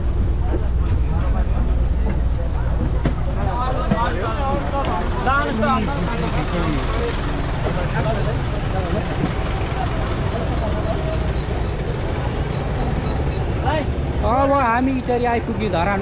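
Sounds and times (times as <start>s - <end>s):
people talking: 0.0s - 16.0s
traffic rumble: 0.0s - 16.0s.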